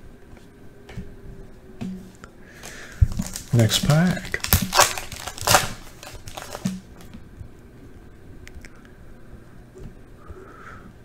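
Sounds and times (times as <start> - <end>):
cards being handled: 2.6 - 7.0
foil wrapper crinkling: 2.6 - 7.1.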